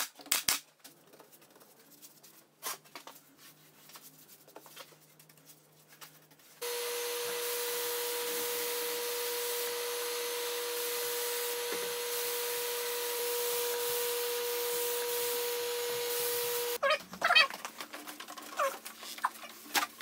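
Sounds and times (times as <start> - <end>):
paint spray gun hissing: 6.6 - 16.8.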